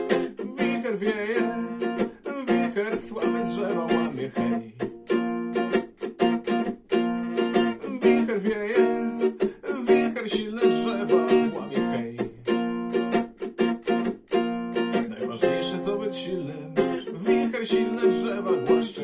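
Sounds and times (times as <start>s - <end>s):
nylon string chords strummed: 0.0s - 19.0s.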